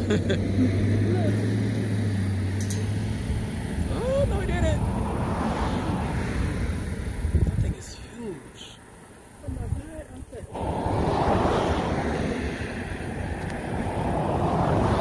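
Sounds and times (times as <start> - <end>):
people laughing: 0.0 - 0.9
voices: 0.0 - 1.7, 3.8 - 14.9.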